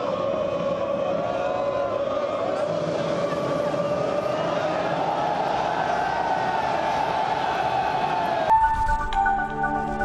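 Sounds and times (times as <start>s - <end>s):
stadium crowd cheering: 0.0s - 8.5s
electronic jingle: 8.5s - 10.0s.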